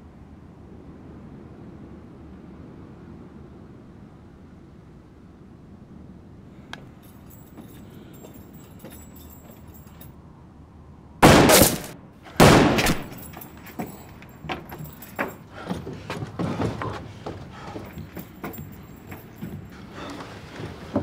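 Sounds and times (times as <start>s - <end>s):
light knocks and clatter: 6.7s - 10.1s, 12.8s - 21.0s
loud bangs: 11.2s - 13.6s.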